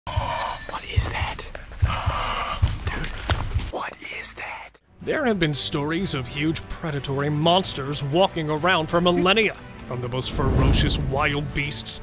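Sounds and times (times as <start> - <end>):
person whispering: 0.1 - 4.8.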